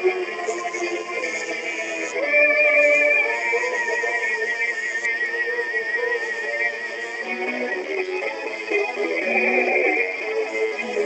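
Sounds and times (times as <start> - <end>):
music with lower notes: 0.0 - 11.0.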